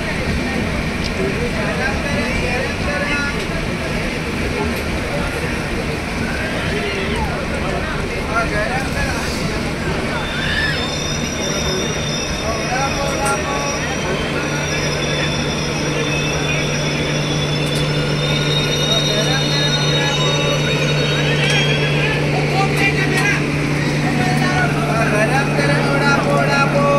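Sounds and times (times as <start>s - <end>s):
electric trains humming: 0.0s - 26.9s
people's voices: 0.0s - 26.9s
faint high whine: 9.9s - 26.9s.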